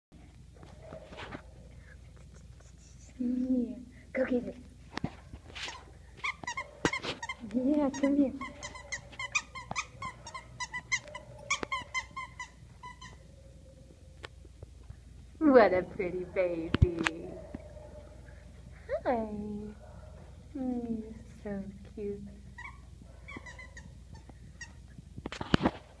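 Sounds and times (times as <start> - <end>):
squeaky toy squeaks: 5.6 - 13.2, 22.6 - 24.8.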